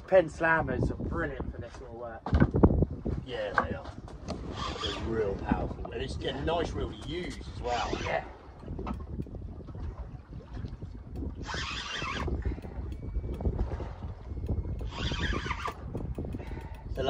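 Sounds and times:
wind rumbling on microphone: 0:00.0 - 0:17.0
light ticks: 0:15.6 - 0:17.0.

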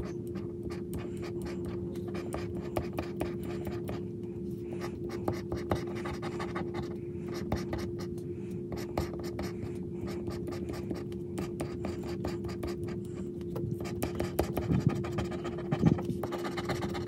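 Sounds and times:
steady hum: 0:00.0 - 0:17.0
scratching lottery ticket: 0:08.7 - 0:17.0.

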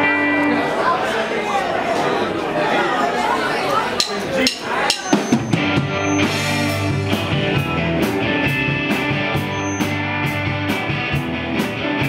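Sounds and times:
ringing electric guitars: 0:00.0 - 0:00.8, 0:04.0 - 0:12.0.

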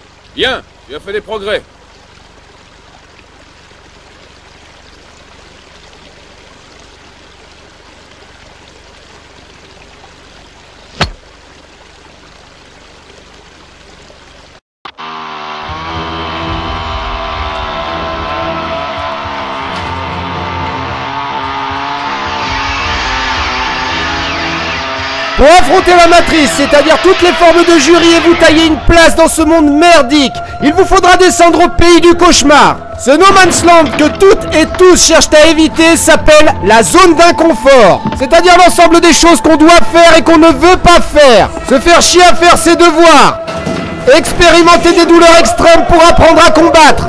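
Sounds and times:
chainsaw engine running: 0:14.9 - 0:30.1, 0:32.9 - 0:36.0.

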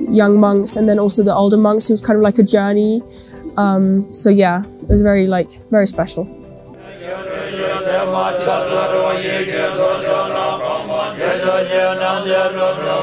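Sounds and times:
monks chanting in unison: 0:06.8 - 0:13.0.

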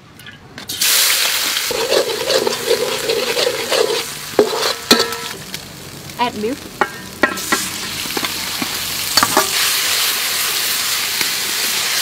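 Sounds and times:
garlic sizzling in hot oil: 0:00.7 - 0:12.0.

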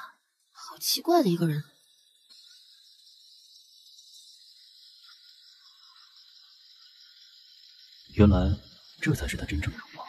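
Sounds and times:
faint high-pitched hiss: 0:00.0 - 0:10.0.

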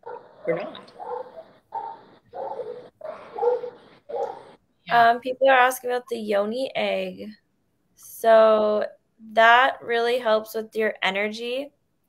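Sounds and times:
muffled bark-like calls: 0:00.0 - 0:04.6.

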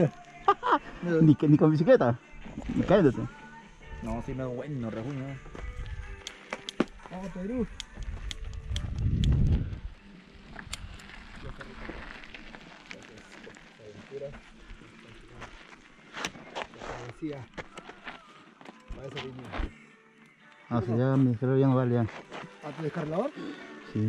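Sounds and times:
low rumble on microphone: 0:08.0 - 0:10.0.

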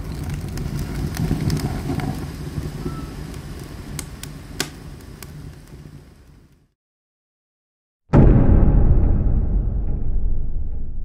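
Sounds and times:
rush of flames: 0:00.0 - 0:06.5
wood crackling and popping: 0:00.0 - 0:06.6.

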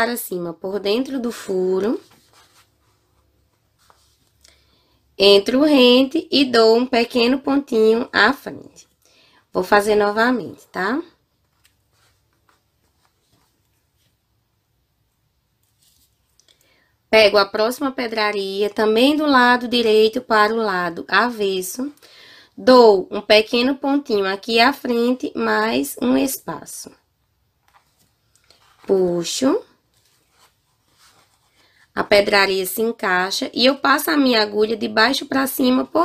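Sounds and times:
needle and thread through fabric: 0:15.5 - 0:16.6, 0:27.6 - 0:32.4
thread drawn through fabric: 0:15.6 - 0:16.6.

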